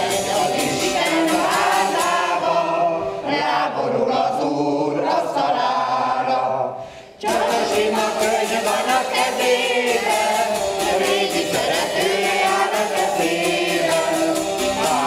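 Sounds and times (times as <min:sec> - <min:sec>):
rhythmic zither strumming: 0:00.0 - 0:02.8, 0:07.2 - 0:15.0
choir of women singing: 0:00.0 - 0:15.0.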